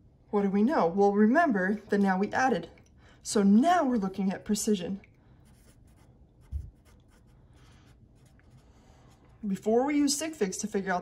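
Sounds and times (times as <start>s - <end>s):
marker writing on paper: 5.5s - 9.2s.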